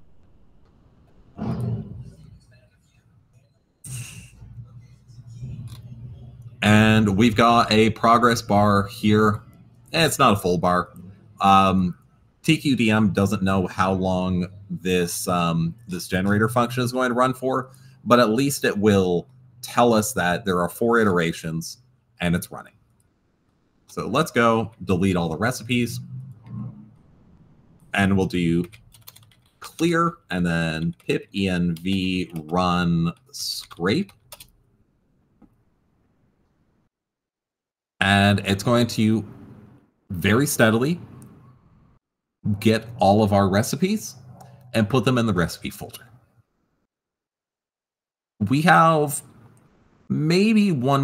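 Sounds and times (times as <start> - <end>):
faint keyboard clicks: 28.6 - 29.6.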